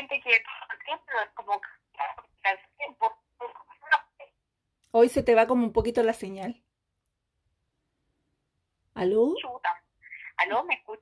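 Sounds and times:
clearer voice speaking: 0.0 - 4.4, 9.0 - 11.0
woman talking over phone line: 0.0 - 4.4, 9.0 - 11.0.

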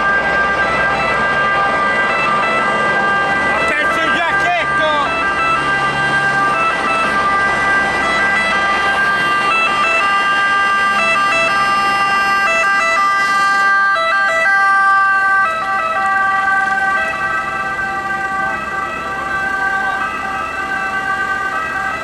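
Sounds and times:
two-tone ambulance siren: 0.0 - 22.0.

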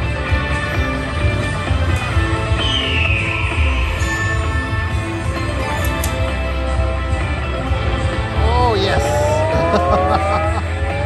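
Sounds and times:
slot machine bonus music: 3.6 - 7.6, 8.2 - 11.0
descending tone: 9.0 - 11.0.

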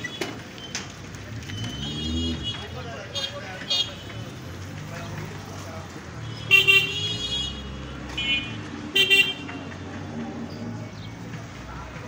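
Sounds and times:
street traffic hum: 0.0 - 12.0
vehicle horn honks: 1.6 - 4.0.

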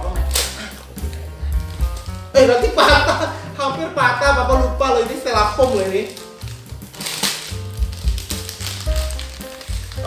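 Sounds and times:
plastic packet ripping: 0.2 - 2.3, 5.0 - 10.0
plastic crinkling: 0.2 - 2.9, 5.0 - 10.0.

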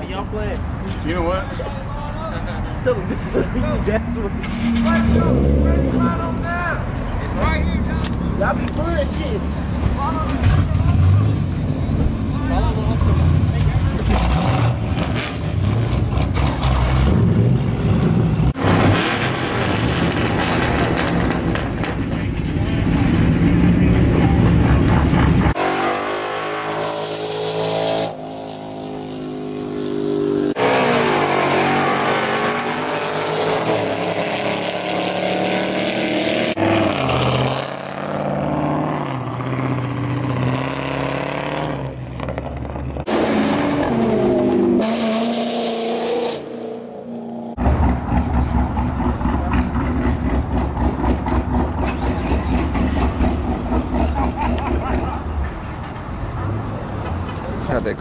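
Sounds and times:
car engines revving: 0.0 - 58.0.

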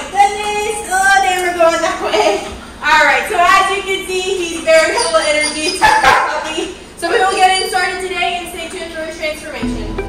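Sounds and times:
puppy barking: 4.7 - 6.6
background music: 9.6 - 10.0.

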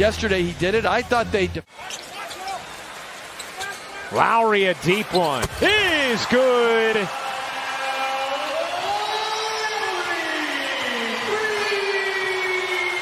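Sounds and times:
crowd noise: 0.0 - 13.0.

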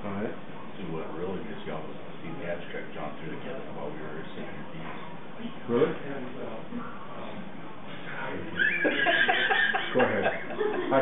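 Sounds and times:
person laughing: 8.6 - 11.0.

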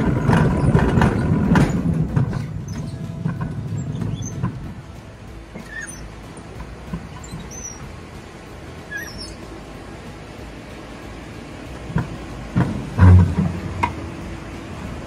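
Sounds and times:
sled rolling on metal rail: 0.0 - 15.0
high squeaks: 0.5 - 4.6, 5.5 - 6.1, 7.1 - 8.0, 8.9 - 9.6.

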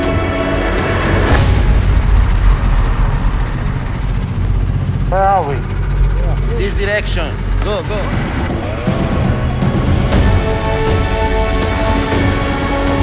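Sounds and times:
snowmobile engines idling: 0.0 - 13.0
voices: 5.0 - 10.9.

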